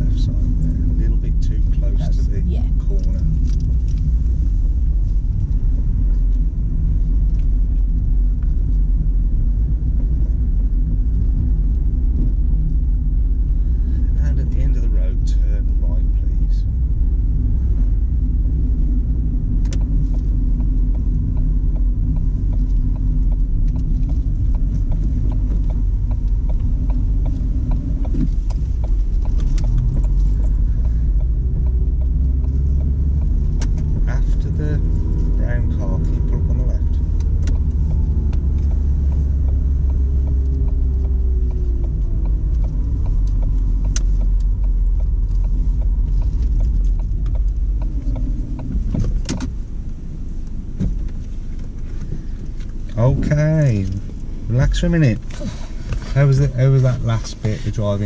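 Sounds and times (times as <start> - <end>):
car cabin road and engine rumble: 0.0 - 58.0
scattered clicks: 19.6 - 34.1, 36.0 - 49.6.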